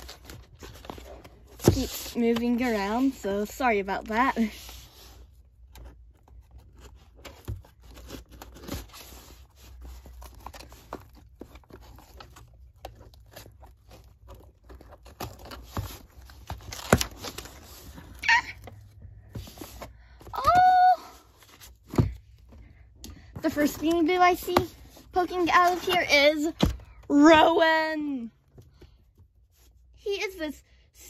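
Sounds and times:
cardboard box being opened: 4.1s - 22.6s.

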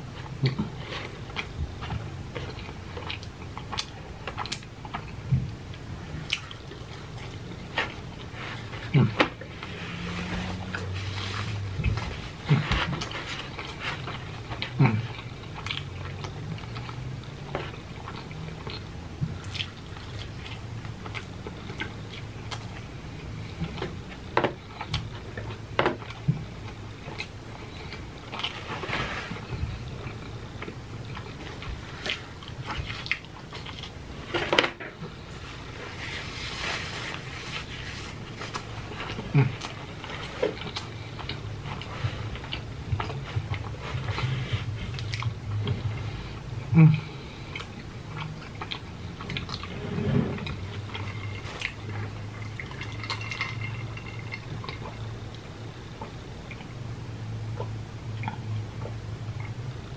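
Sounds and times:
person chewing food: 0.0s - 56.8s, 57.5s - 59.9s.

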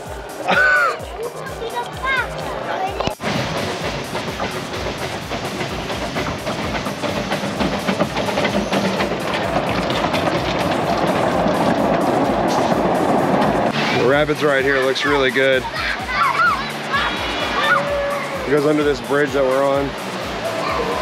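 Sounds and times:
music playing: 0.0s - 21.0s
train wheels clattering on rails: 3.2s - 15.5s.

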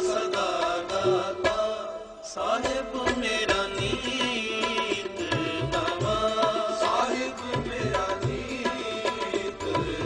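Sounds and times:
devotional singing: 0.0s - 10.0s
instrumental accompaniment: 0.0s - 10.0s.

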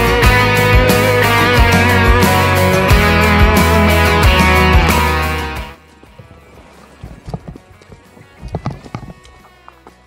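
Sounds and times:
faint music: 5.6s - 10.0s
bike knocks and thumps: 7.0s - 9.5s.

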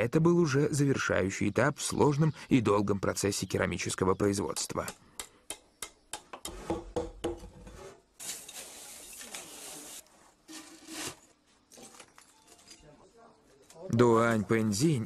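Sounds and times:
gritty scraping: 7.5s - 12.8s.

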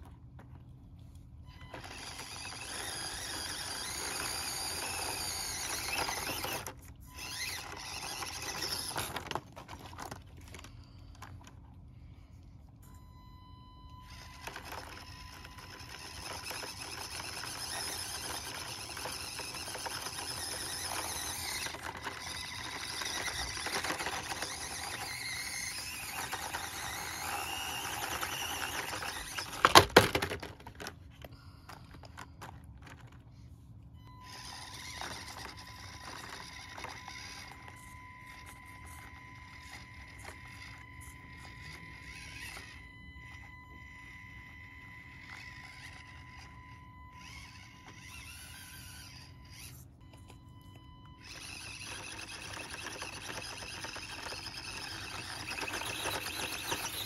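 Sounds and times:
rc car motor and gears whining: 0.0s - 57.0s.

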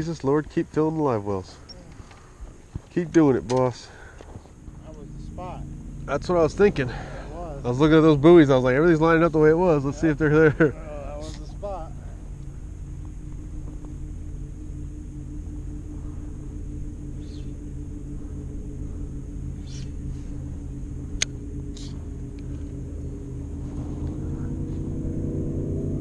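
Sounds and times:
boat motor humming: 0.0s - 26.0s.

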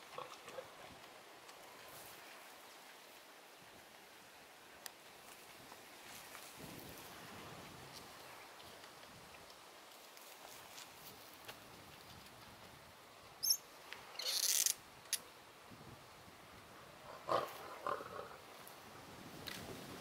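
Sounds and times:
faint outdoor background: 0.0s - 20.0s.

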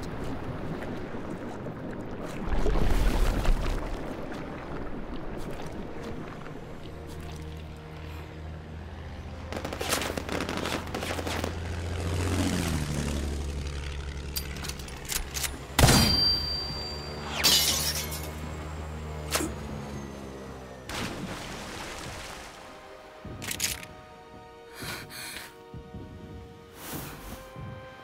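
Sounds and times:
diving warplane engine: 3.7s - 25.0s
glass breaking crash: 17.4s - 18.3s
dramatic background music: 22.4s - 28.0s.

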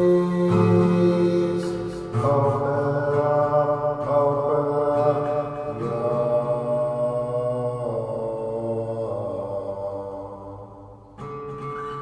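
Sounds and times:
slow chant-like vocal music: 0.0s - 11.2s.

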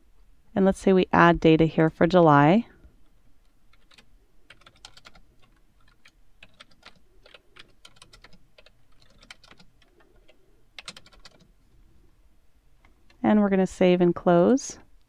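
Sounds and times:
faint typing on keyboard: 2.8s - 11.6s.

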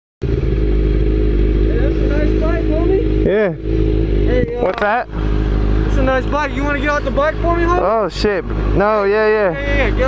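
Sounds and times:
motorcycle engine running: 0.2s - 10.0s.

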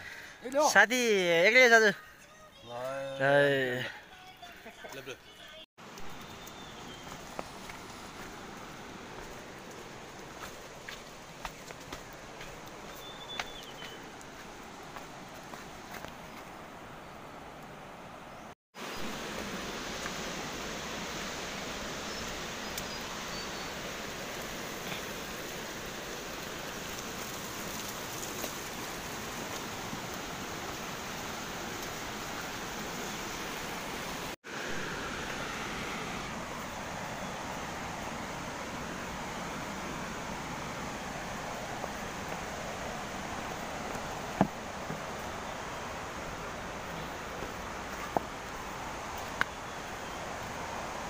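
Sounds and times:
rushing mountain water: 5.8s - 18.2s, 18.8s - 51.0s.

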